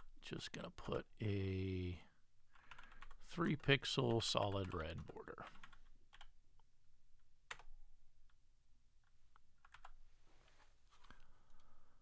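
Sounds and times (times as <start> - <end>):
computer keyboard keystrokes: 2.6 - 3.2, 5.5 - 6.3, 7.5 - 7.7, 9.6 - 10.0.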